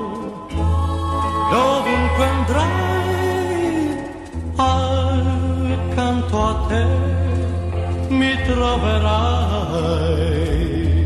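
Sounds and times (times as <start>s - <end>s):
man singing: 0.0s - 11.0s
pop ballad band: 0.0s - 11.0s
steady bass line: 0.0s - 11.0s.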